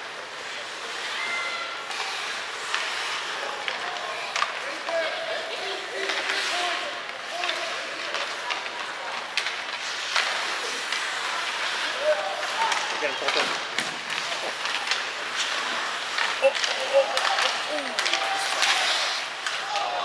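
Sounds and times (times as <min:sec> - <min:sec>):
skate blades scraping ice: 0:00.3 - 0:20.0
hockey sticks and puck clacking: 0:01.8 - 0:20.0
players shouting: 0:16.3 - 0:20.0.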